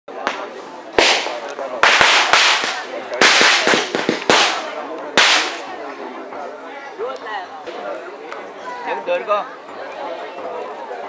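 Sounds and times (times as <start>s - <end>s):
sharp cracks with hissing tail: 0.2s - 5.7s.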